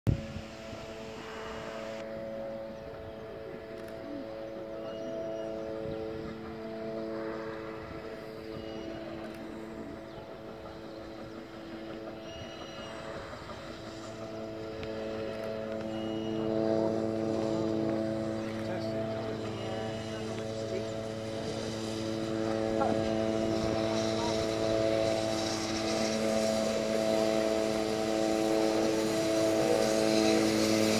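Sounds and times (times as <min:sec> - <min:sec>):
steam train approaching: 0:00.1 - 0:30.9.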